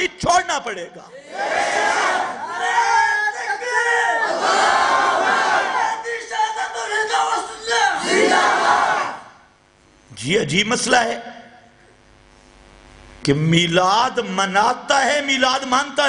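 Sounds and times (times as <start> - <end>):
crowd shouting slogans: 1.2 - 6.0, 7.8 - 9.4.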